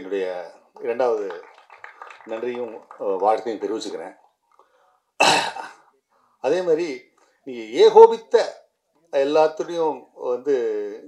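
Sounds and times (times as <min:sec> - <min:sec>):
man speaking: 0:00.0 - 0:01.5, 0:02.3 - 0:04.2, 0:06.4 - 0:11.0
man clearing throat: 0:05.2 - 0:05.9.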